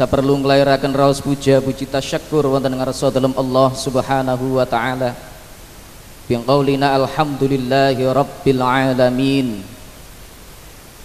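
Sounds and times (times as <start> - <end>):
man speaking into a microphone: 0.0 - 5.4, 6.3 - 9.8
steady hiss: 0.0 - 11.0.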